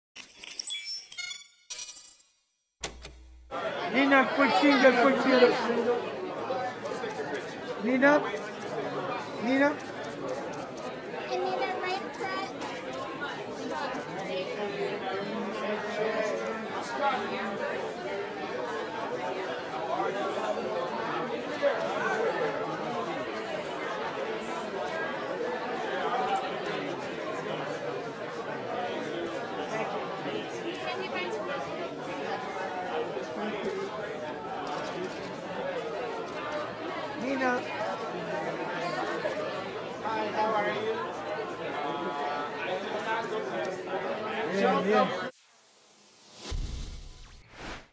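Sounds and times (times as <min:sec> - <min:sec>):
people talking at once: 0:03.5 - 0:45.4
murmur of overlapping voices: 0:03.5 - 0:46.5.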